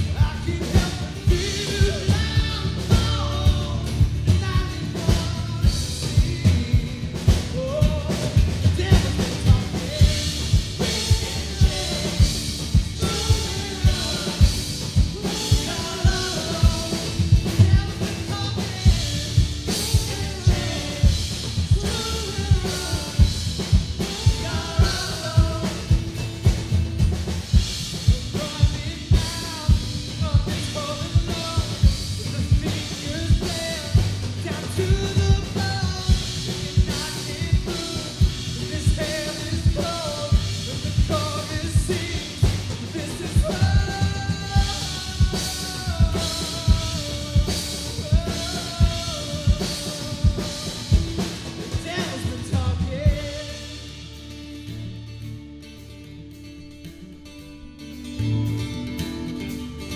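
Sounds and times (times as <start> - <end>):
person singing: 0.0 - 26.2, 27.9 - 54.0
drum kit beat: 0.0 - 55.0, 57.9 - 59.9
electric guitar: 0.0 - 59.9.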